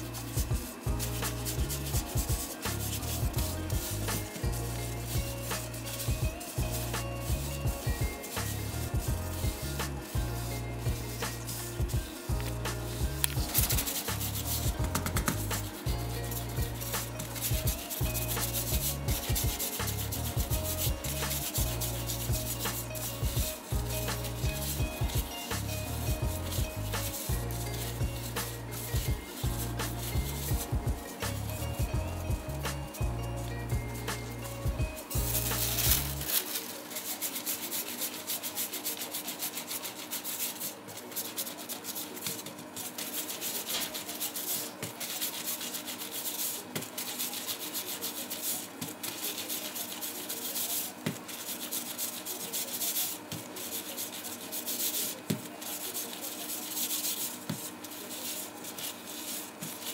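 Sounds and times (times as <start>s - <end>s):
background music with bass line: 0.0s - 36.4s
dough rubbing on tabletop: 0.0s - 59.9s.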